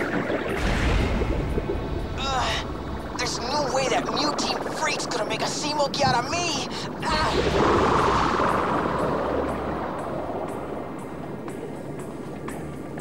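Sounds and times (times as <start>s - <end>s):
dramatic background music: 0.0s - 13.0s.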